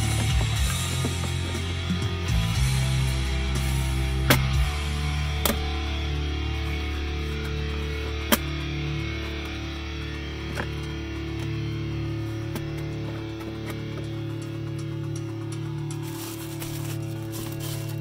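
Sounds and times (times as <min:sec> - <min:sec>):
rock music on car stereo: 0:00.0 - 0:18.0
hands clicking plastic console: 0:05.4 - 0:18.0.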